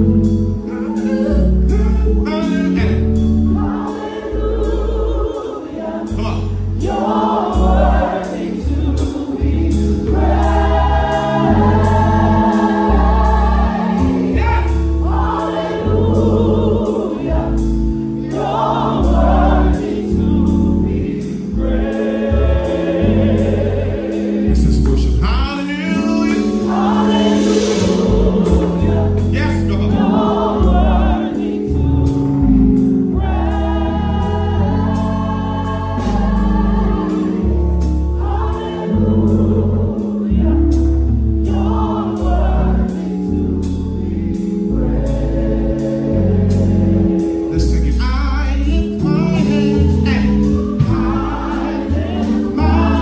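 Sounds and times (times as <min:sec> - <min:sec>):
gospel choir singing: 0:00.0 - 0:53.0
low instrumental accompaniment: 0:00.0 - 0:53.0.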